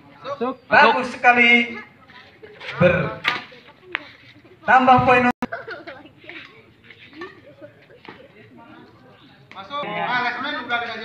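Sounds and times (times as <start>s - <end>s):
faint background chatter: 1.7s - 4.7s, 5.4s - 11.0s.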